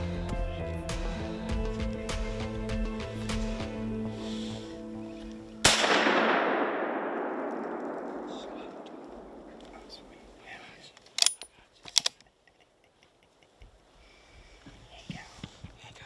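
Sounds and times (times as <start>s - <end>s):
rifle shot echoing: 5.6s - 10.4s
sharp clicks: 11.0s - 13.2s.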